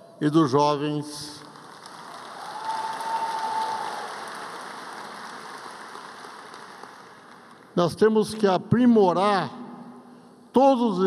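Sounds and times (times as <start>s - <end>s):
audience applauding: 1.4s - 7.8s.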